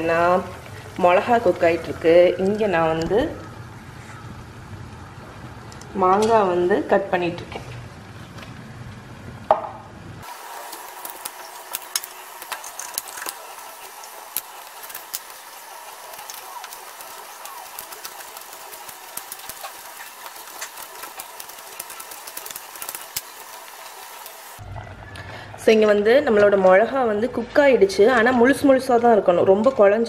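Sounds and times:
steady hiss: 0:10.2 - 0:24.6.

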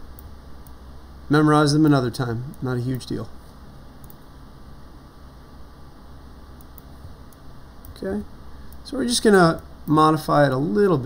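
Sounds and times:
low hum: 0:00.0 - 0:11.0
faint clicks: 0:04.0 - 0:04.3, 0:06.6 - 0:08.0.

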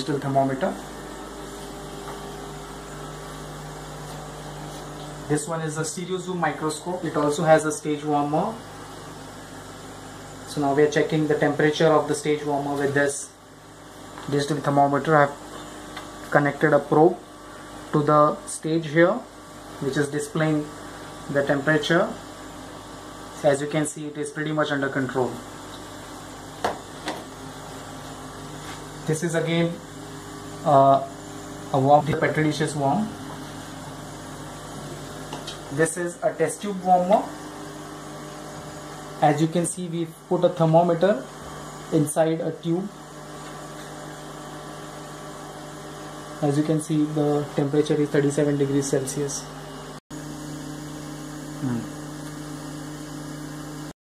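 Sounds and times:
machine hum: 0:00.0 - 0:54.0.

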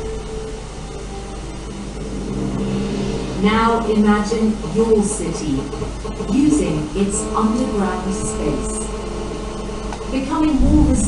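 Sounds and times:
low drone background music: 0:00.0 - 0:11.0.

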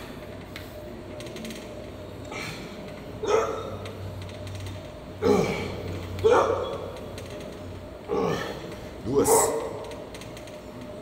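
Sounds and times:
steady low hum: 0:00.0 - 0:11.0
weight machine clicking: 0:02.7 - 0:05.1, 0:05.7 - 0:11.0.

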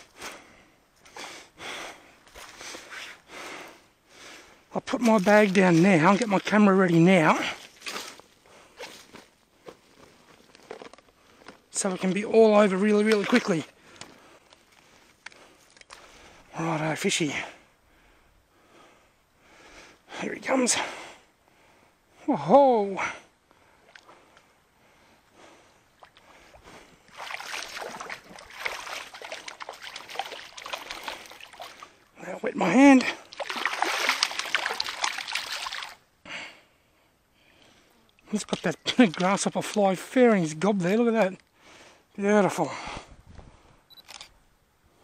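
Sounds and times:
stream water splashing: 0:04.8 - 0:08.1, 0:11.8 - 0:13.7, 0:25.9 - 0:36.1
backpack rustling: 0:07.6 - 0:11.7
small clicks and drips: 0:13.1 - 0:16.0, 0:27.1 - 0:31.9, 0:33.0 - 0:36.0.

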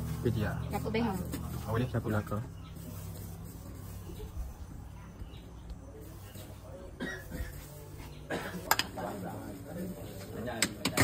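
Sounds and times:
person coughing: 0:07.0 - 0:07.6, 0:08.3 - 0:08.6.

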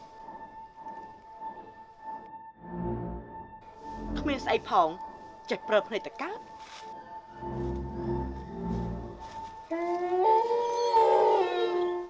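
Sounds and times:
long pitched howl: 0:09.7 - 0:12.0.

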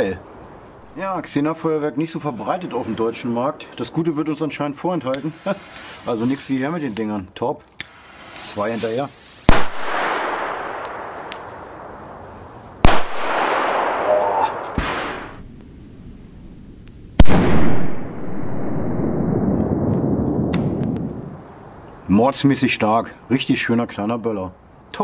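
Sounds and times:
small firecracker crack: 0:07.7 - 0:08.6, 0:09.3 - 0:15.7
firecracker bangs with echo: 0:09.5 - 0:12.0, 0:12.8 - 0:15.4.

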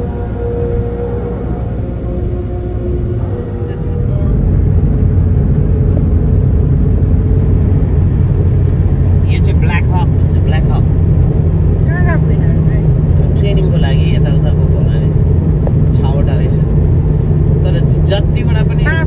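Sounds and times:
car driving low rumble: 0:00.0 - 0:19.0
voices talking: 0:03.2 - 0:04.4.

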